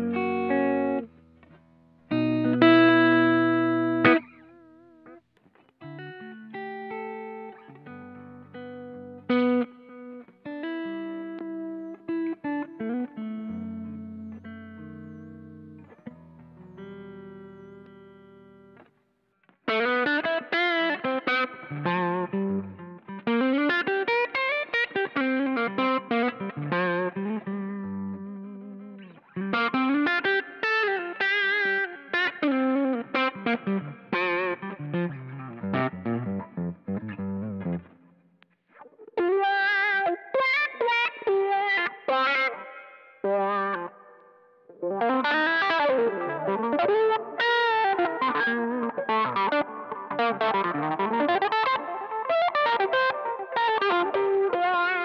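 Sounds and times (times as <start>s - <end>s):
electric guitar with effects: 0.0s - 55.0s.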